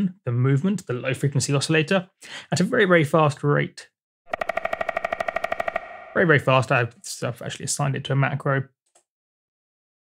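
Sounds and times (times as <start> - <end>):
synthesized woodpecker drumming: 4.3 - 6.6.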